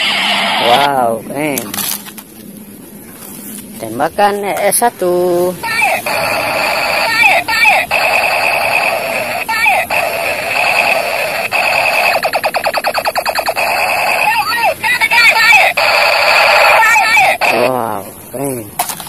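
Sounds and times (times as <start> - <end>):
warbling chirps: 5.6 - 17.6
rapid electronic stutter: 5.7 - 14.7
toy gun electronic buzzing: 5.7 - 17.7.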